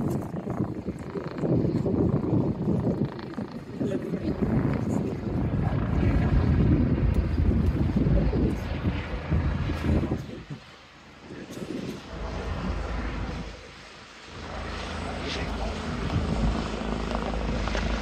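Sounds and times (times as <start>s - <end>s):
helicopters rumbling overhead: 0.0s - 18.0s.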